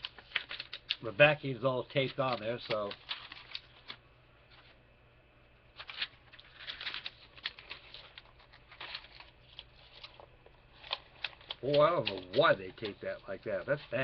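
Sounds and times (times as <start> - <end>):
paper rustling and crinkling: 0.0 - 4.8, 5.7 - 14.0
tape crackles: 0.0 - 4.8, 5.7 - 14.0.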